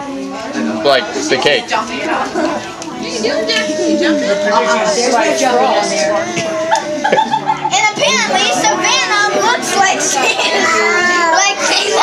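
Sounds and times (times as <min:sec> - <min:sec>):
children chattering and calling out: 0:00.0 - 0:12.0
other voices: 0:00.4 - 0:12.0
child crying: 0:03.2 - 0:12.0.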